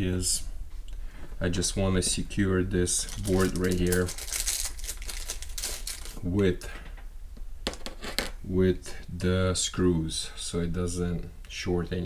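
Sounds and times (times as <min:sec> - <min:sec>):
hands rustling: 0:03.1 - 0:06.2.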